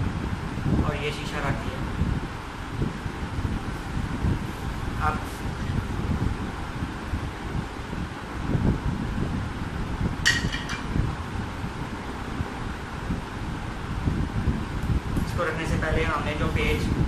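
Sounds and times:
wind buffeting microphone: 0.0s - 17.0s
sharp clink: 10.3s - 10.9s.

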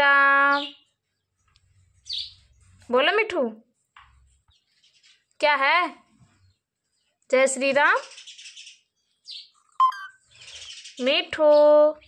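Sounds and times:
parrot chirping: 9.4s - 11.0s.

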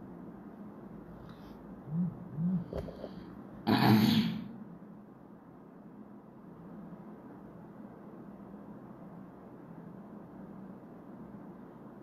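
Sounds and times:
woman clearing her throat: 3.6s - 4.5s.

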